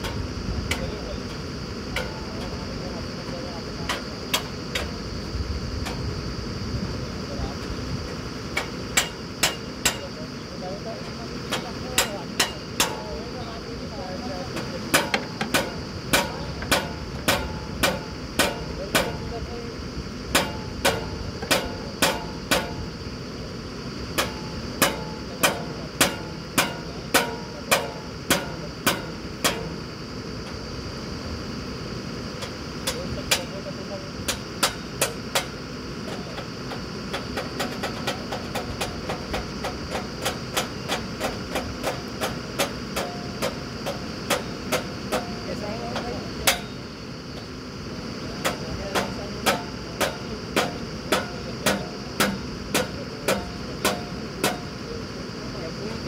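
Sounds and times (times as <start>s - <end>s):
drilling rig engine and compressor: 0.0s - 56.0s.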